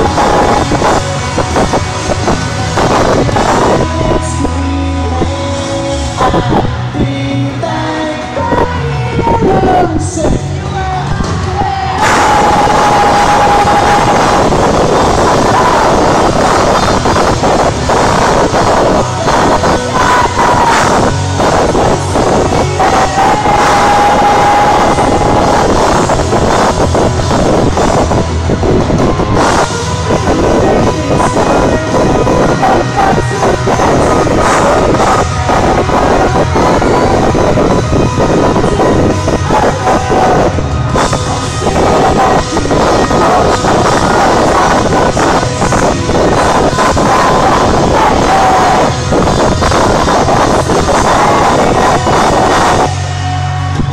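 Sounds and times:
live rock band playing: 0:00.0 - 0:53.9.

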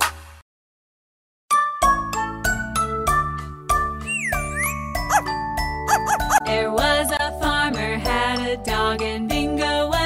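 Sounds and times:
upbeat instrumental children's music: 0:01.5 - 0:10.0
sliding whistle-like tone: 0:04.0 - 0:04.9.

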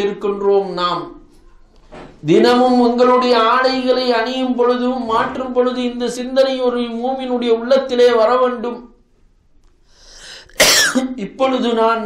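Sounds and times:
man breathing in: 0:09.8 - 0:10.6
man coughing: 0:10.6 - 0:11.1.

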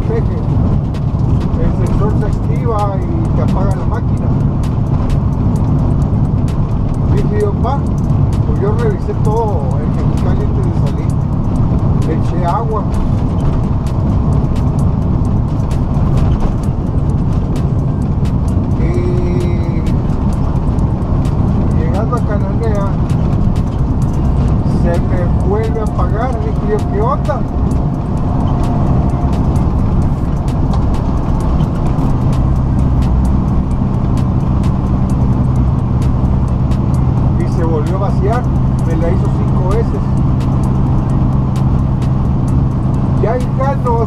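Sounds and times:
diesel engine drone: 0:00.0 - 0:44.0
road noise: 0:00.0 - 0:44.0.

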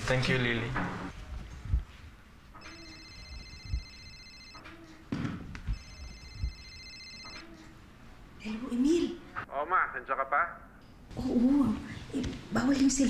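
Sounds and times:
mobile phone ringing: 0:02.6 - 0:05.0, 0:05.7 - 0:07.6.

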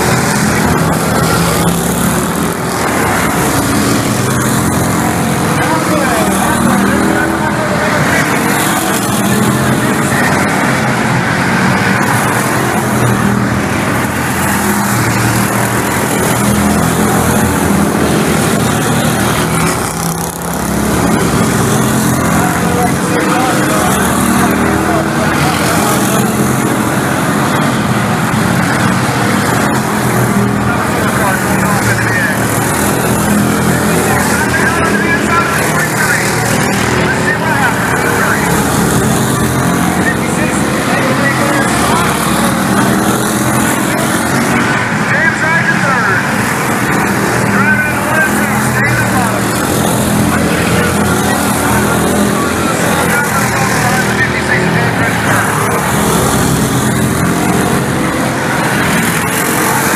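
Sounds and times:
stock car engines racing: 0:00.0 - 0:59.9.

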